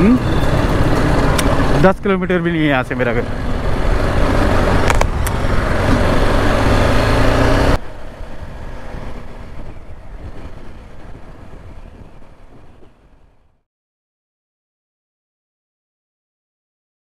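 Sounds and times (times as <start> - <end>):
motorcycle engine running: 0.0 - 13.4
wind and road noise: 0.0 - 13.6.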